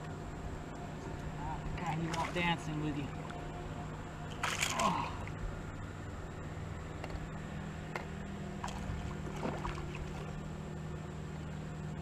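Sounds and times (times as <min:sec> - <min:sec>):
boat motor hum: 0:00.0 - 0:12.0
fish splashing in water: 0:04.3 - 0:05.4, 0:08.6 - 0:10.4.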